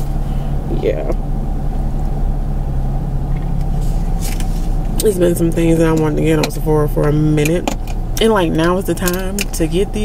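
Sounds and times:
car engine humming: 0.0s - 10.0s.

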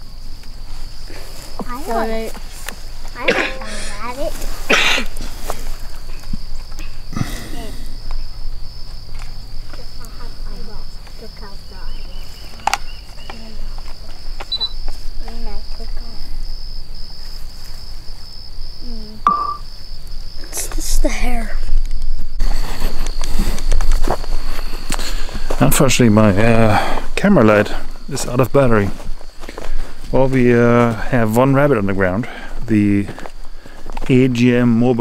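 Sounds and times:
insects chorus: 0.0s - 35.0s.

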